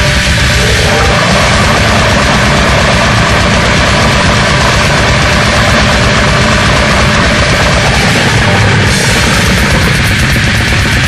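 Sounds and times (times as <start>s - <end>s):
extreme metal music: 0.0s - 11.0s.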